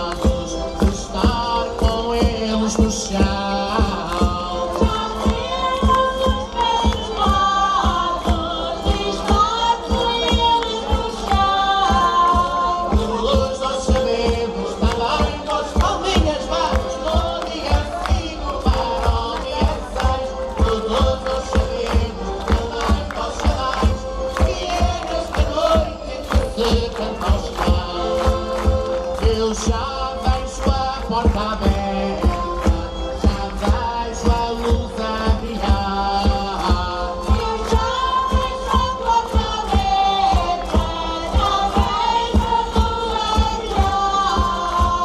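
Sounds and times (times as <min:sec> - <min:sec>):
group singing: 0:00.0 - 0:45.0
instrumental accompaniment with beat: 0:00.0 - 0:45.0.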